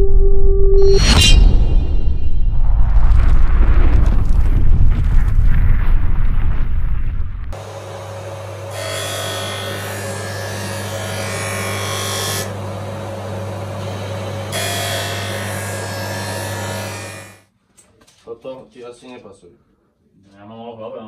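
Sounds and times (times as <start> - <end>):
sharpening machine motor hum: 7.6 - 17.4.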